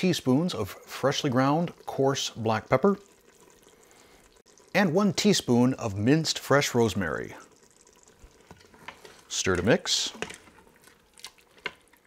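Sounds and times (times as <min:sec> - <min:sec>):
spoon stirring thick stew: 0:07.5 - 0:12.0.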